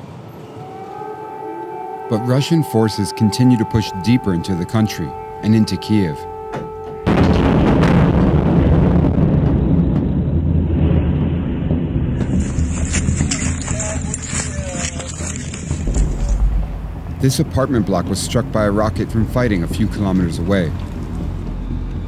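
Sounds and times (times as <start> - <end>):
loud blast: 7.0 - 13.8
deep rumble: 7.0 - 22.0.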